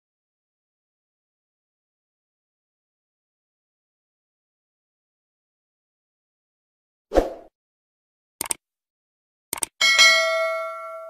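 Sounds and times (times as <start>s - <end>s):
double mouse click: 8.4s - 8.6s, 9.5s - 9.7s
bell ding: 9.8s - 11.0s.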